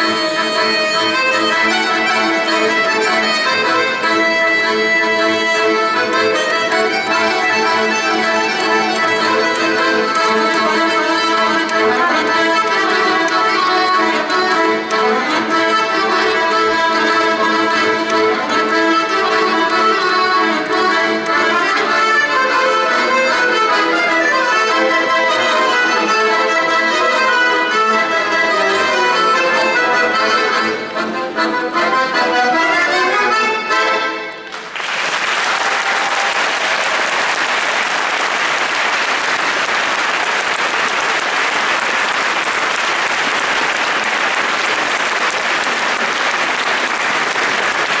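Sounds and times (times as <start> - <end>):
accordion ensemble playing: 0.0 - 48.0
audience applauding: 34.4 - 48.0.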